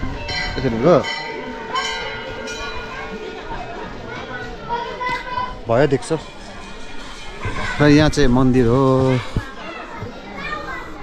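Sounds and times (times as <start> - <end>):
distant people chattering: 0.0 - 11.0.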